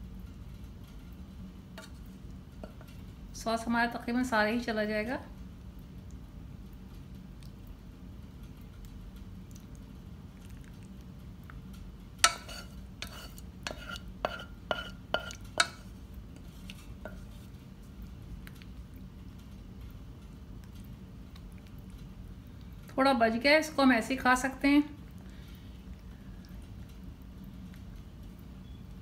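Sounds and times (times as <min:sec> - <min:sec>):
faint steady hum: 0:00.0 - 0:29.0
spatula knocking against pan: 0:12.2 - 0:15.8
wooden spatula scraping saucepan: 0:12.2 - 0:15.8, 0:16.4 - 0:17.5.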